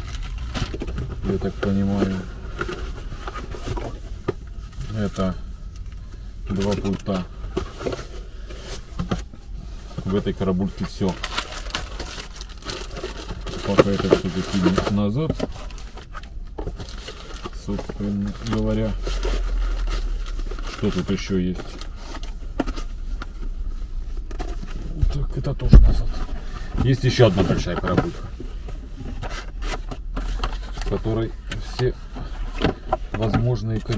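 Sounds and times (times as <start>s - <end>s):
steady low rumble: 0.0s - 33.7s
plastic packaging rustling: 0.0s - 33.9s.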